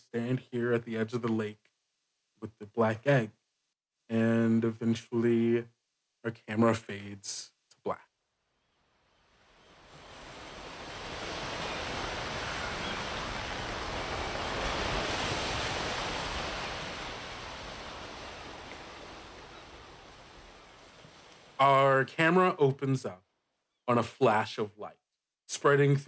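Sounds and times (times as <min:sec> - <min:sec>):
ocean surf waves: 0:09.2 - 0:21.6.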